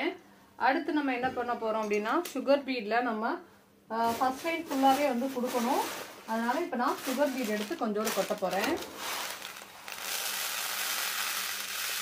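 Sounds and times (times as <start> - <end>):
tiny beads pouring into dish: 7.1 - 12.0.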